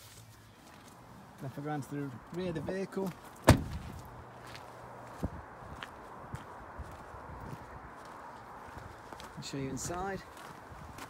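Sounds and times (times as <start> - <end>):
footsteps on gravel: 0.0 - 11.0
van door slamming: 3.4 - 4.1.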